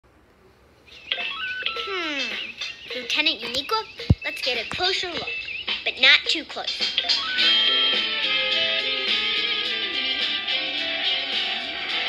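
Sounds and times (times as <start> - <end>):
electronic beeps rising in pitch: 0.9 - 6.0, 7.0 - 8.9
falling electronic tone: 1.0 - 2.6, 7.0 - 9.7.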